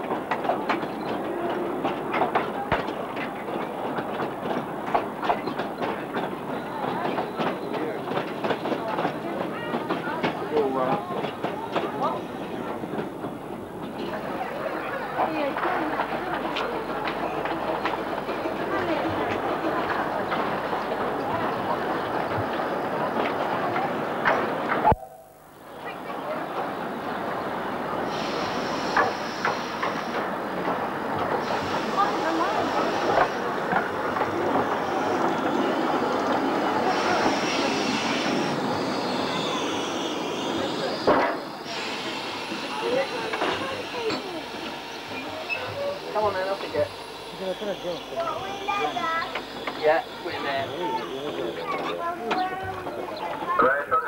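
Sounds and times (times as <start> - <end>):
miniature steam train running: 0.0 - 24.9, 25.7 - 54.0
people chattering: 0.0 - 54.0
high-pitched sounds: 24.8 - 26.1.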